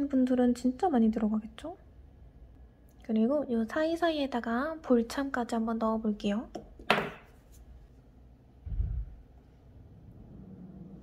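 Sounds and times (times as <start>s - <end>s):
faint low hum: 0.0s - 11.0s.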